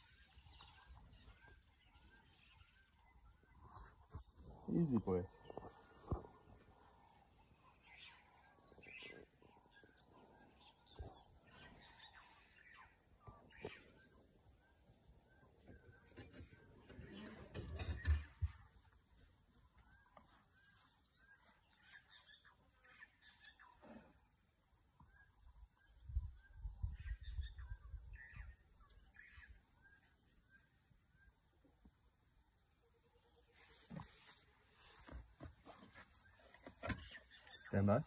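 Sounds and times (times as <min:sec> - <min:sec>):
bird chirping: 0:00.0 - 0:38.0.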